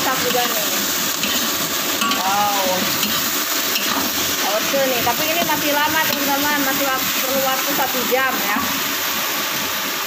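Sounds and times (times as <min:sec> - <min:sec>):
metal spatula scraping wok: 0:00.0 - 0:09.0
chicken sizzling in a wok: 0:00.0 - 0:10.0.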